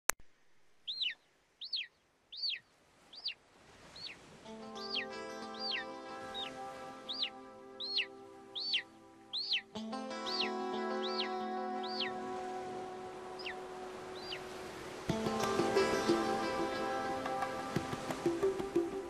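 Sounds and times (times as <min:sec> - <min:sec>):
bird chirp sweeping downward: 0:00.8 - 0:03.4, 0:04.9 - 0:09.7, 0:10.3 - 0:12.2, 0:13.4 - 0:14.5
music with long held notes: 0:04.5 - 0:19.0.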